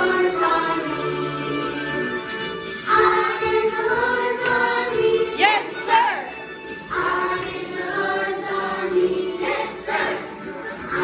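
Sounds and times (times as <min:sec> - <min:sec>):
children singing together: 0:00.0 - 0:01.8, 0:02.9 - 0:06.3, 0:06.9 - 0:11.0.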